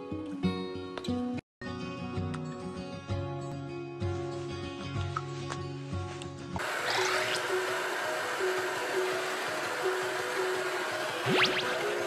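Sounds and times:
background music: 0.0 - 12.0
hair dryer blowing: 6.6 - 12.0.

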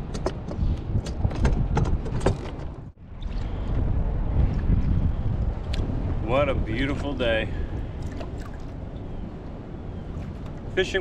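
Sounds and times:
wind buffeting microphone: 0.0 - 11.0
water lapping against hull: 7.5 - 11.0.

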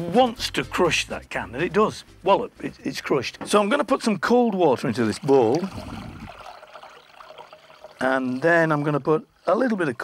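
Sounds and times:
water pouring into glass bowl: 4.0 - 10.0.

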